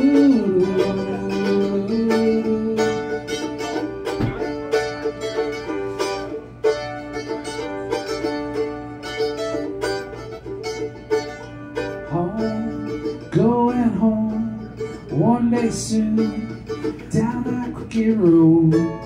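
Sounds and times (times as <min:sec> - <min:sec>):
person singing: 0:00.0 - 0:03.7, 0:12.0 - 0:19.0
mandolin melody: 0:00.0 - 0:19.0.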